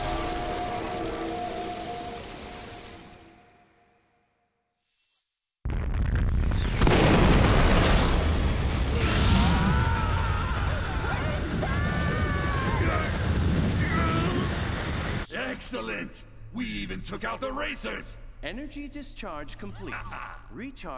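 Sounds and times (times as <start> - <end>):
cartoon explosion with heavy rumble: 5.7 - 14.6.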